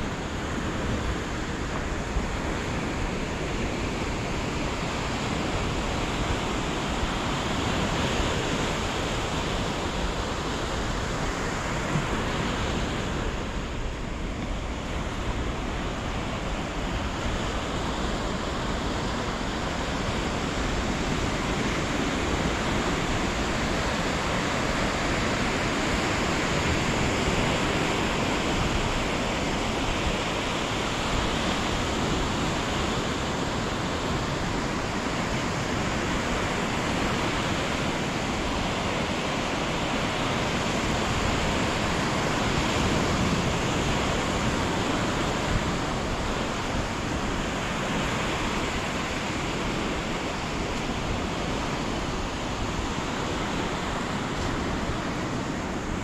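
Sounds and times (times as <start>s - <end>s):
ocean surf on a beach: 0.0s - 56.0s.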